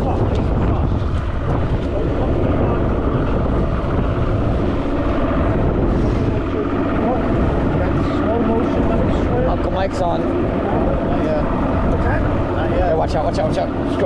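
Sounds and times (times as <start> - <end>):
outboard motor running: 0.0 - 14.0.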